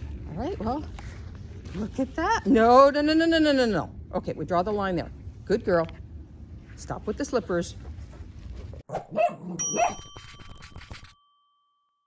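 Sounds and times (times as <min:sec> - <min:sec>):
dog barks: 0:08.9 - 0:10.0
bright chime ding: 0:09.6 - 0:12.0.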